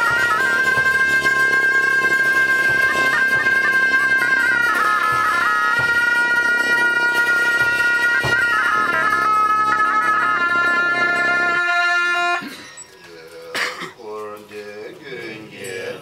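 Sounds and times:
shawms playing a melody: 0:00.0 - 0:13.5.

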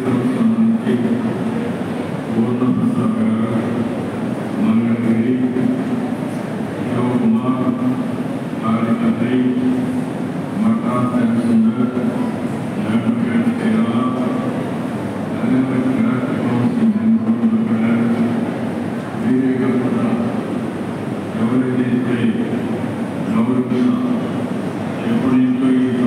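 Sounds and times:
man speaking over loudspeakers: 0:00.0 - 0:26.0
steady background haze: 0:00.0 - 0:26.0.

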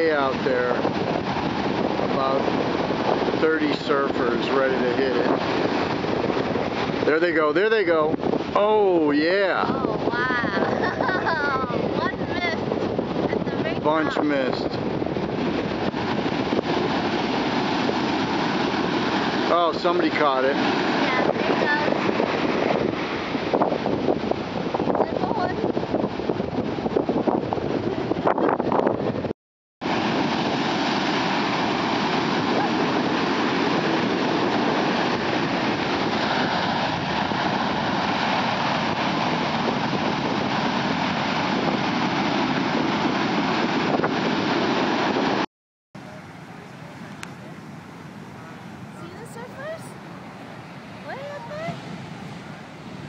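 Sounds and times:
surf breaking on beach: 0:00.0 - 0:45.4, 0:46.0 - 0:53.0
wind buffeting microphone: 0:00.0 - 0:45.4, 0:46.0 - 0:53.0.

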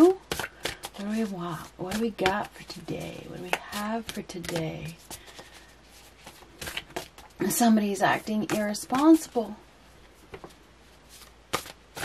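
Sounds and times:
cards being shuffled: 0:00.2 - 0:07.4, 0:10.1 - 0:12.0.

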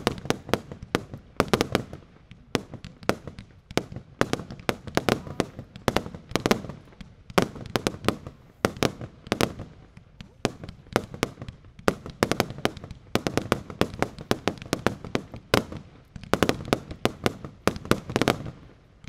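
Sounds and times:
fireworks bangs: 0:00.0 - 0:19.0.

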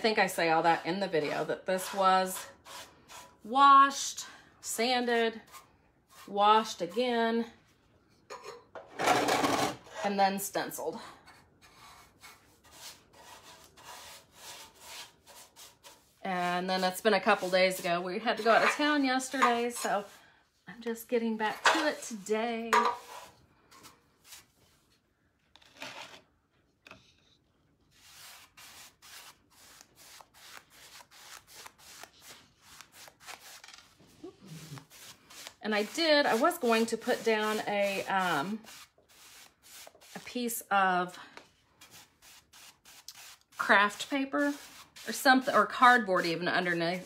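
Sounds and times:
paintbrush brushing on metal: 0:34.5 - 0:40.5, 0:41.8 - 0:47.0.

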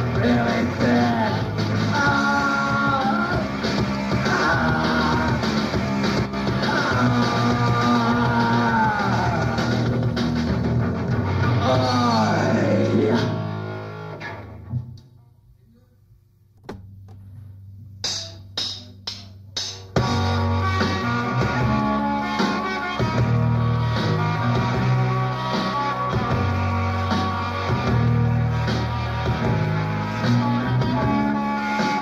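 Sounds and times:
punk rock band playing: 0:00.0 - 0:14.5, 0:18.0 - 0:32.0.

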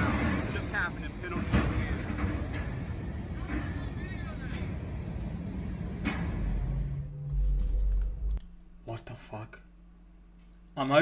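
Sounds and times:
train cars rumbling and rattling: 0:00.0 - 0:08.4
heavy low rumble: 0:04.8 - 0:08.9.

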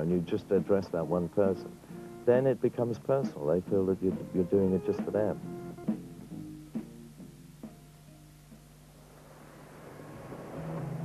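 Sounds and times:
music: 0:00.0 - 0:11.0
boat rushing over water: 0:09.2 - 0:11.0.

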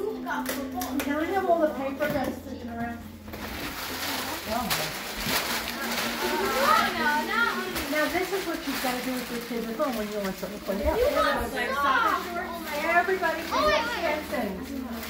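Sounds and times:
chatter of children and adults: 0:00.0 - 0:15.0
paper and packaging rustling: 0:03.1 - 0:15.0.

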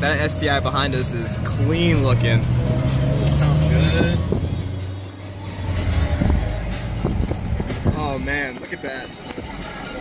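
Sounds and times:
car engine and exhaust: 0:00.0 - 0:10.0
music playing: 0:00.0 - 0:10.0.

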